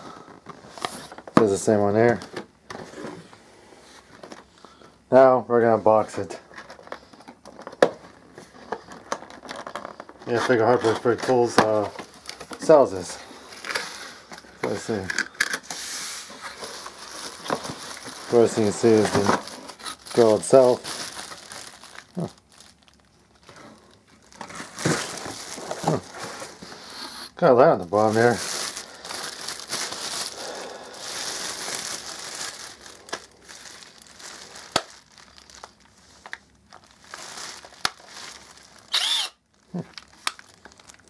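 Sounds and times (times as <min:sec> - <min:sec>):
plastic bag crinkling: 0:05.9 - 0:15.7, 0:16.3 - 0:26.9, 0:27.7 - 0:41.0.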